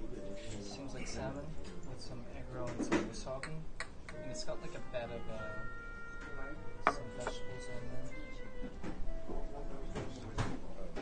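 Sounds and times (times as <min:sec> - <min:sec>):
background music: 0:03.8 - 0:10.9
ceramic bowl knocking on wood: 0:06.8 - 0:07.4
light taps of bowl: 0:06.8 - 0:07.4.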